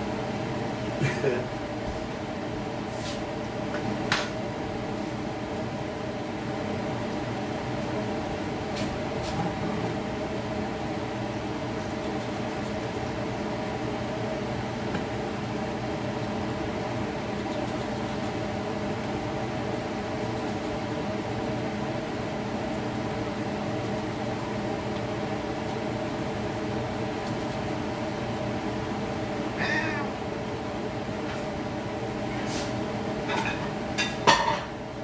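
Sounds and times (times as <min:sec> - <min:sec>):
kitchen hum: 0:00.0 - 0:35.0.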